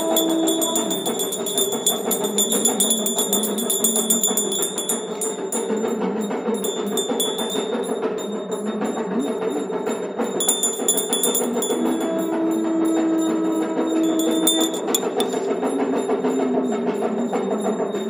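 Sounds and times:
held low note: 0:00.0 - 0:06.1, 0:10.4 - 0:17.8
bells ringing rapidly: 0:00.0 - 0:18.0
high bell tone: 0:00.0 - 0:18.0
percussion: 0:00.0 - 0:18.0.

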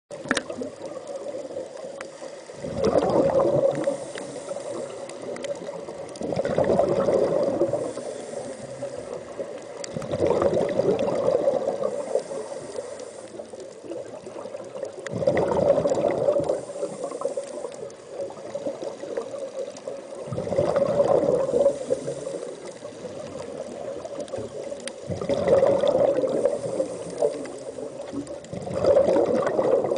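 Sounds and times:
steady hiss of water: 0:00.1 - 0:29.9
diver's bubbling exhalations: 0:02.6 - 0:05.4, 0:06.2 - 0:09.3, 0:09.9 - 0:12.5, 0:15.1 - 0:17.3, 0:20.2 - 0:22.5, 0:25.0 - 0:29.9.

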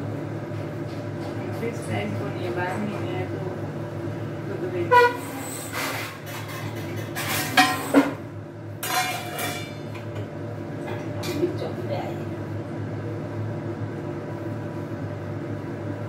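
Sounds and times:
metal pots and utensils clinking: 0:05.0 - 0:08.2, 0:08.8 - 0:10.2.

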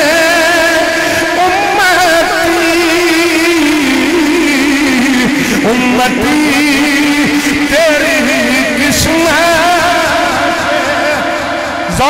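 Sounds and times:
man singing amplified chant: 0:00.0 - 0:12.0.

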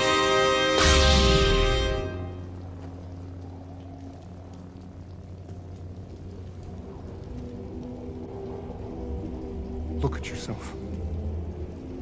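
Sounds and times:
low orchestral chords: 0:00.0 - 0:03.1
wind and rain hiss: 0:00.0 - 0:12.0.

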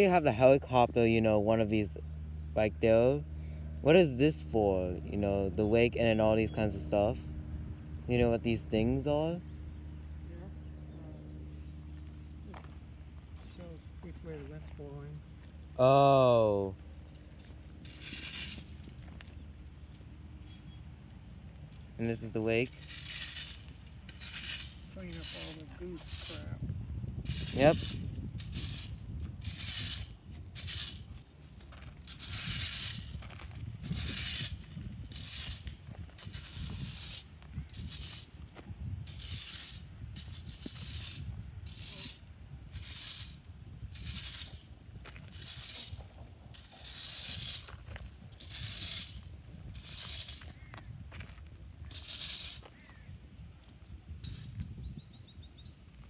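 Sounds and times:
rake scraping across gravel: 0:00.0 - 0:02.0, 0:02.7 - 0:07.2, 0:08.1 - 0:09.4, 0:12.5 - 0:54.9.

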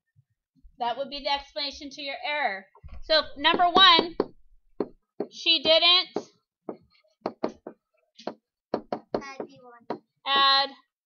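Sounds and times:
pen tapping on whiteboard: 0:03.4 - 0:10.6.

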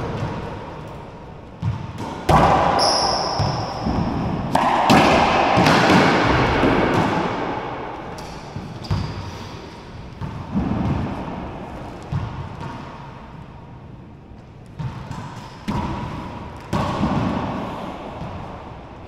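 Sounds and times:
rubber ball hitting racquets and walls: 0:00.0 - 0:13.2, 0:14.6 - 0:19.0
sneaker squeaks on hardwood floor: 0:02.8 - 0:04.1.

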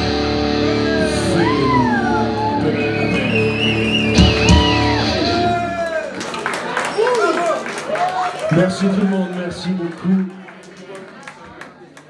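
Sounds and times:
electric guitar sustained notes: 0:00.0 - 0:05.7.

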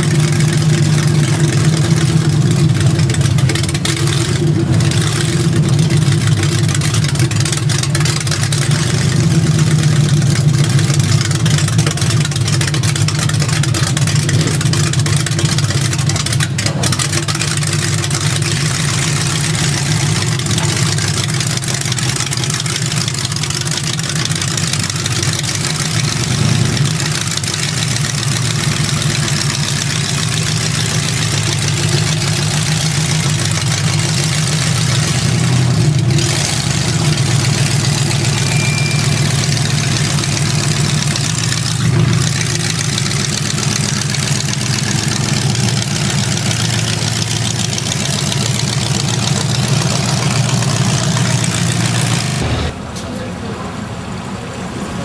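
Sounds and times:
car engine idling loudly: 0:00.0 - 0:55.0.

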